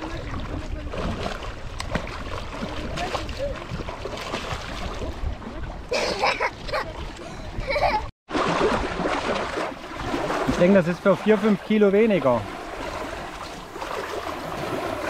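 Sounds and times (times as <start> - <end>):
water splashing: 0.0 - 15.0.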